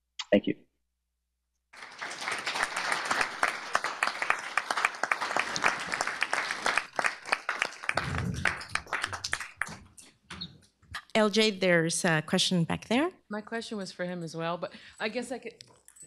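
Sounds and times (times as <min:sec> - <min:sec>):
audience applauding: 0:01.8 - 0:09.9.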